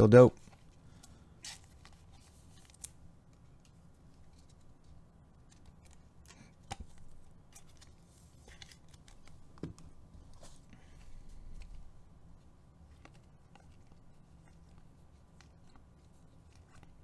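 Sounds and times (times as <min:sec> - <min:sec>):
cards clicking and sliding: 0:00.4 - 0:12.0, 0:12.9 - 0:17.0.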